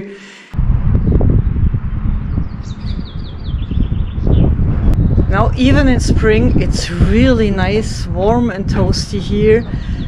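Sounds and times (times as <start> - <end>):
wind rumbling on microphone: 0.6 - 10.0
songbird singing: 0.8 - 10.0.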